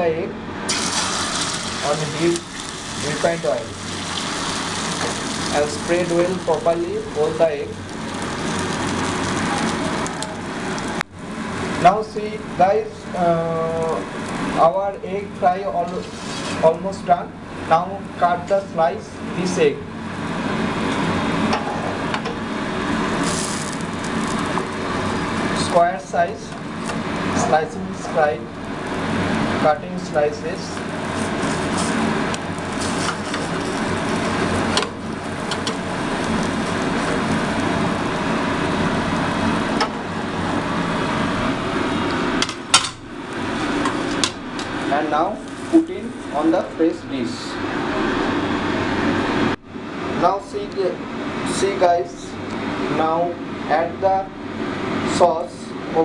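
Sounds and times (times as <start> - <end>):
steady background hum: 0.0 - 56.0.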